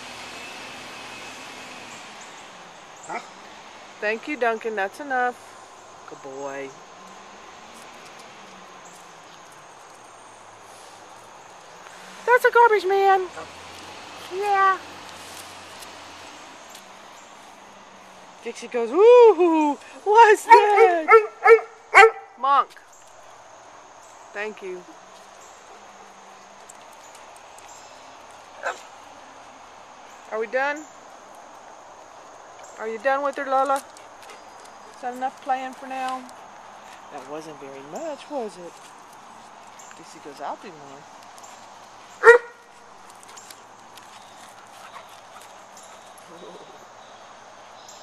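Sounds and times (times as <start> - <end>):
distant garbage truck engine hum: 0.0 - 6.2, 6.8 - 18.6
faint outdoor background: 0.0 - 48.0
insects droning: 0.0 - 48.0
dog barking: 3.1 - 3.3, 20.5 - 22.4, 42.2 - 42.6.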